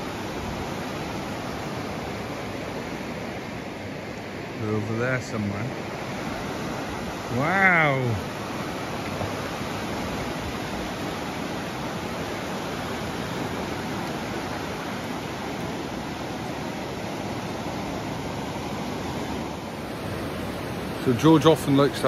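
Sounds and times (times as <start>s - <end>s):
sea surf breaking on beach: 0.0s - 22.0s.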